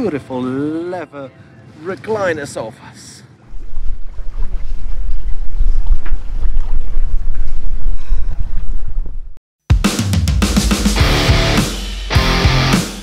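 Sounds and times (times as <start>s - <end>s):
wind buffeting microphone: 3.5s - 9.4s
loud rock music: 9.7s - 13.0s.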